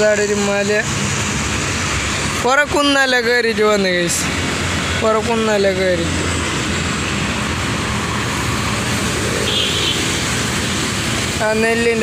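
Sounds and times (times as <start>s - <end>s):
highway traffic: 0.0s - 12.0s.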